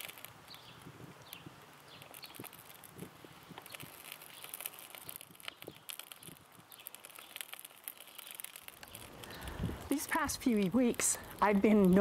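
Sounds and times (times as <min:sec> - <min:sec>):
soft fire hiss: 0:00.0 - 0:12.0
wood fire crackling and popping: 0:00.0 - 0:12.0.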